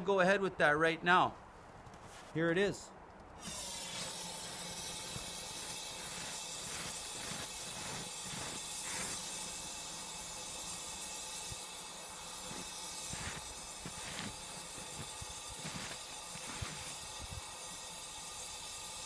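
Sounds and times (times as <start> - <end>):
gas hissing from a can: 3.4 - 19.0.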